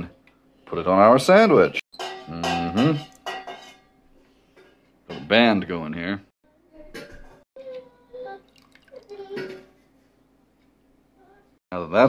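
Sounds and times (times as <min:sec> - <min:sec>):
metal tongs knocking saucepan: 0:02.0 - 0:03.9.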